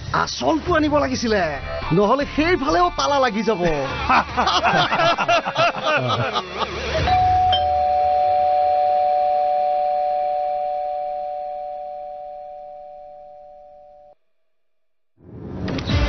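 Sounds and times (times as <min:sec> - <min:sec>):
doorbell chime ding-dong: 0:07.1 - 0:14.1.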